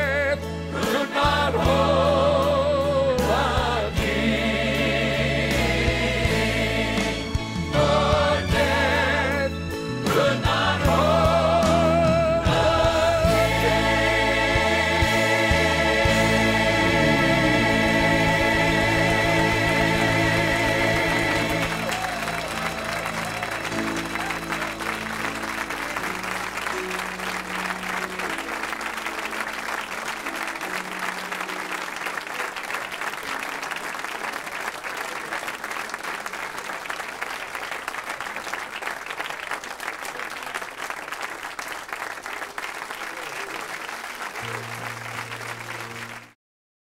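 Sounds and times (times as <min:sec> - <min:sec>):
soft held instrumental chords: 0:11.1 - 0:22.2
audience applauding: 0:13.3 - 0:46.4.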